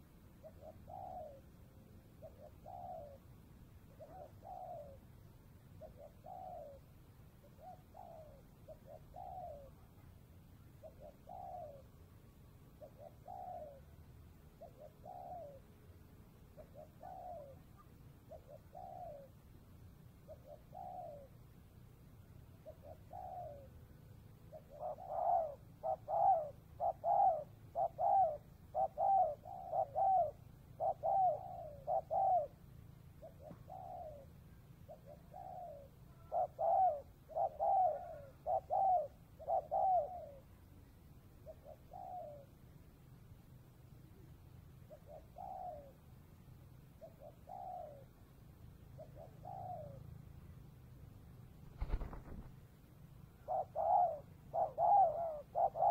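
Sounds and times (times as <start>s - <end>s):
dove cooing: 0.0s - 21.7s, 22.3s - 42.7s, 44.0s - 46.1s, 46.8s - 50.3s, 51.6s - 52.6s, 53.2s - 55.9s.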